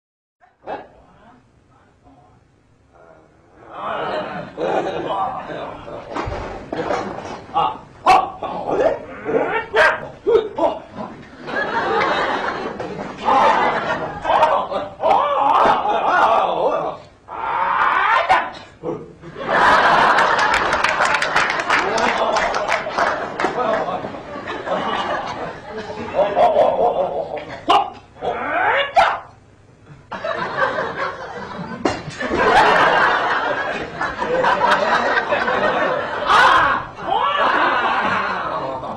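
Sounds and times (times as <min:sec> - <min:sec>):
man imitating dog whining: 0:07.6 - 0:10.9, 0:27.6 - 0:29.4
person yelping like a dog: 0:07.6 - 0:10.9, 0:14.2 - 0:18.7, 0:27.6 - 0:29.4, 0:36.2 - 0:37.5.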